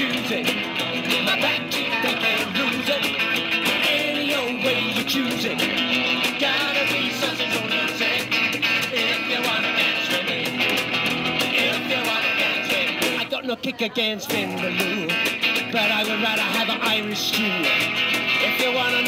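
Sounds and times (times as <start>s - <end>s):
upright double bass: 0.0s - 13.3s
electric guitar: 0.0s - 13.4s, 14.2s - 19.0s.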